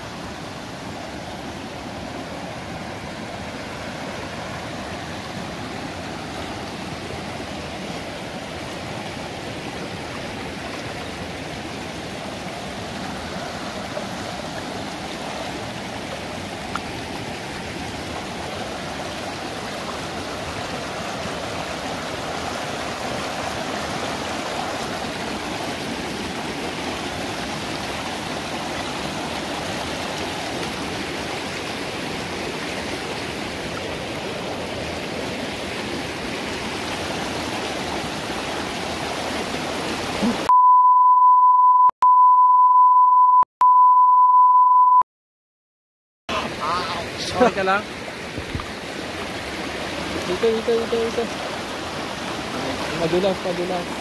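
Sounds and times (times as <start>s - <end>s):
creek rushing over stones: 0.0s - 40.5s, 46.3s - 54.0s.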